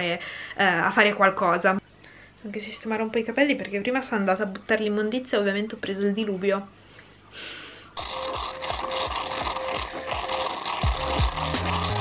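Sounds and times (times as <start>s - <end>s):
milk frother hissing and buzzing: 8.0s - 12.0s
background music with beat: 10.8s - 12.0s.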